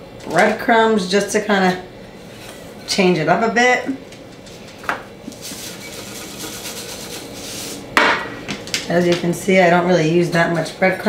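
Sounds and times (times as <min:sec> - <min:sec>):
breadcrumbs shaken from canister: 0:05.3 - 0:07.7.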